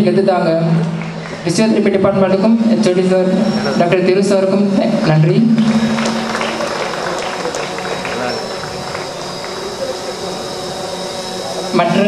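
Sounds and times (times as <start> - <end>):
audience applauding: 5.6 - 10.0.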